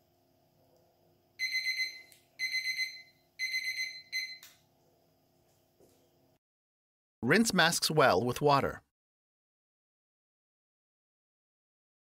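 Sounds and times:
kitchen timer alarm beeping: 1.4s - 4.5s.

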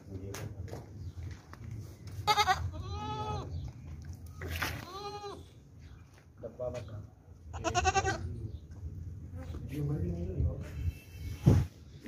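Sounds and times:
goat kids bleating: 2.1s - 3.6s, 4.5s - 5.6s, 7.5s - 8.4s.

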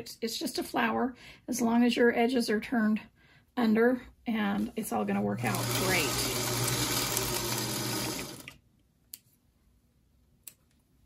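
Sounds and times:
sewing machine running: 5.1s - 8.6s.

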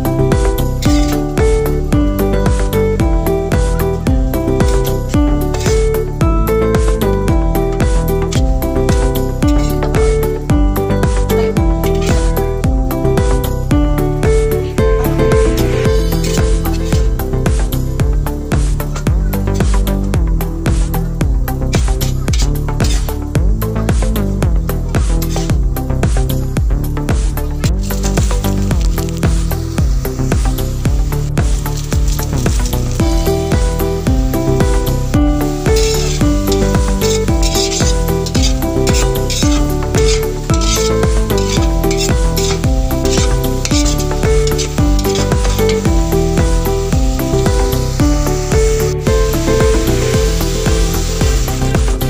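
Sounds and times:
food sizzling in a wok: 0.0s - 52.0s
metal spatula stirring: 0.4s - 1.8s, 3.8s - 10.4s, 11.1s - 12.6s, 14.5s - 17.4s, 18.8s - 20.2s, 21.7s - 23.2s, 24.8s - 25.6s, 27.4s - 29.6s, 31.1s - 52.0s
electronic music with steady beat: 29.8s - 52.0s.

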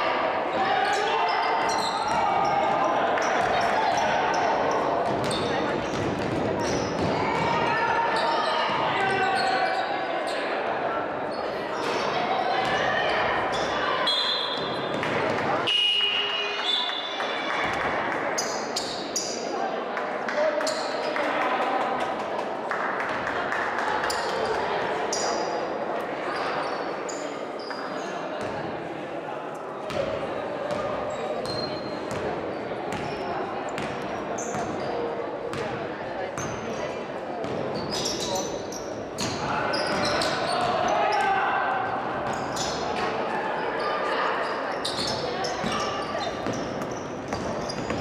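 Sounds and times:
chatter of voices: 0.0s - 48.0s
sneakers squeaking: 0.6s - 10.5s, 11.2s - 17.8s, 18.4s - 19.5s, 24.1s - 25.6s, 26.3s - 28.6s, 30.7s - 35.8s, 36.4s - 48.0s.

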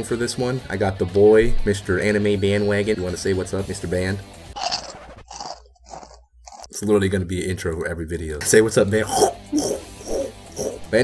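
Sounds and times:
man laughing: 9.0s - 10.9s.

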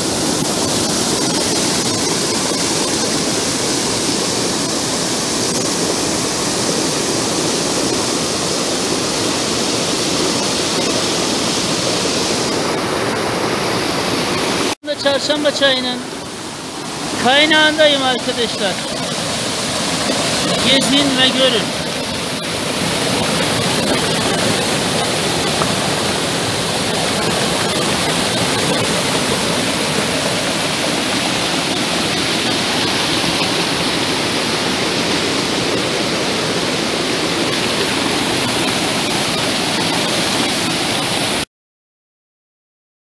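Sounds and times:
stream rushing over rocks: 0.0s - 41.4s.

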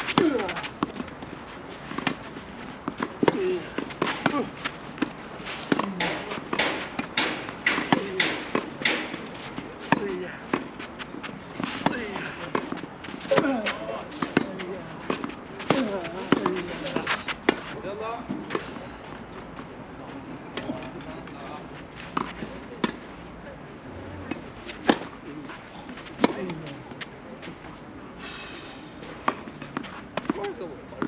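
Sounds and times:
tennis balls struck by rackets: 0.0s - 19.4s, 22.1s - 23.1s, 24.1s - 25.2s, 26.0s - 27.1s.

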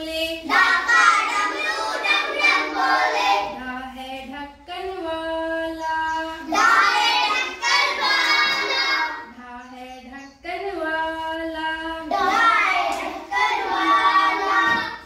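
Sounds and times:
children singing in unison: 0.0s - 4.0s, 5.6s - 9.4s, 12.0s - 15.0s.

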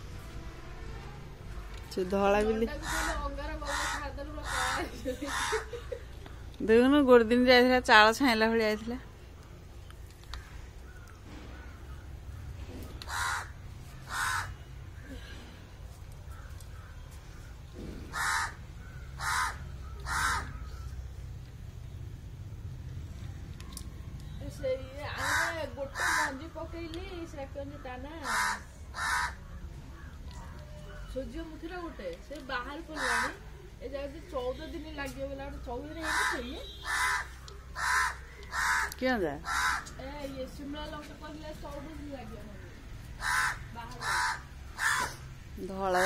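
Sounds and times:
crow cawing: 2.8s - 5.8s, 10.4s - 15.4s, 18.1s - 20.9s, 25.1s - 26.6s, 27.6s - 30.3s, 32.8s - 33.6s, 35.9s - 40.0s, 42.5s - 45.3s.

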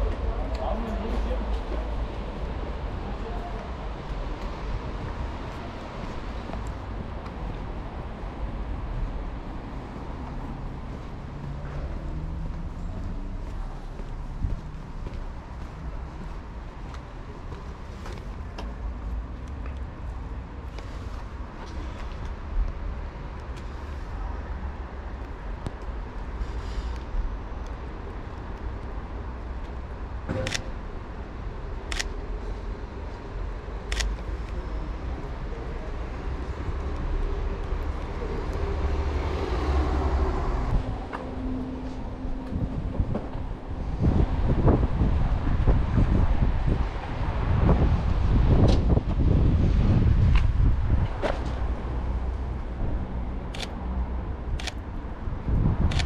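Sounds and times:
wind rumbling on microphone: 0.0s - 30.2s, 31.0s - 56.0s
low traffic rumble: 0.0s - 56.0s
camera shutter clicks: 30.4s - 30.7s, 31.9s - 32.1s
car passing: 33.9s - 56.0s.

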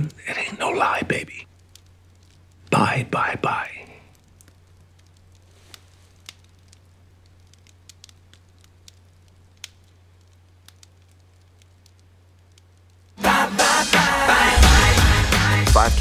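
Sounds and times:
low steady hum: 0.0s - 13.2s
wood fire crackling: 0.0s - 16.0s.

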